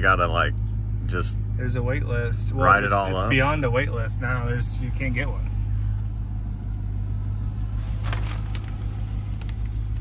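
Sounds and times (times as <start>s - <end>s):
engine running low hum: 0.0s - 10.0s.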